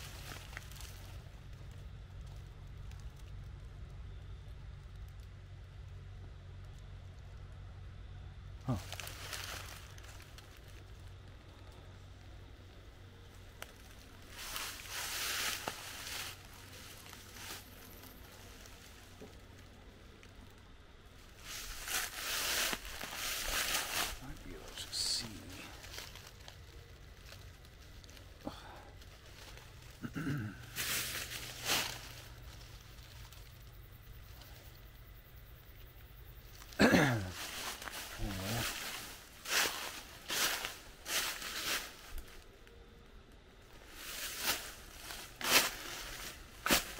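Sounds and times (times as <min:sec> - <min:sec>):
dry leaves and brush rustling: 0:00.0 - 0:06.1, 0:08.6 - 0:46.9
low background hum: 0:00.0 - 0:46.9.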